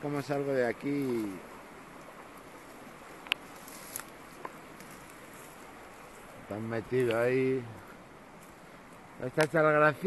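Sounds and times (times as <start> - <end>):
small river flowing: 0.0 - 10.0.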